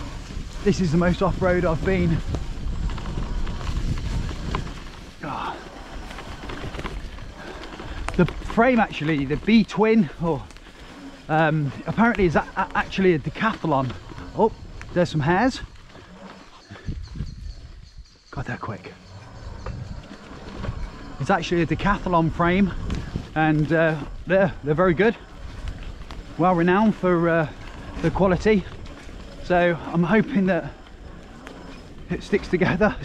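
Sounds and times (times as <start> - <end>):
bike knocking and rattling: 0.0 - 33.0
wind and tyres rumbling: 0.0 - 33.0.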